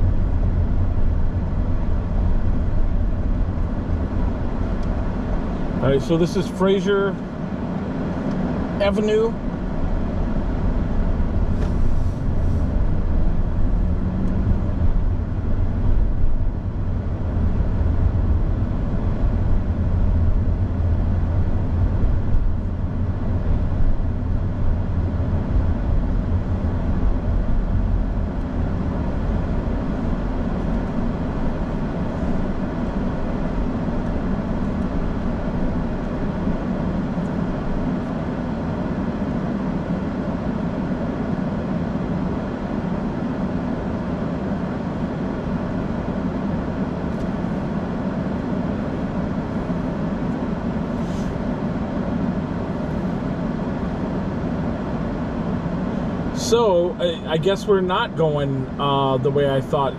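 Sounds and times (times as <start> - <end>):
engine and road rumble: 0.0 - 59.9.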